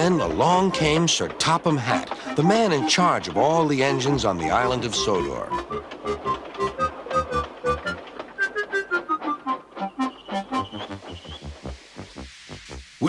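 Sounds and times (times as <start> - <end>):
electronic background music: 1.8 - 8.0, 8.7 - 13.0.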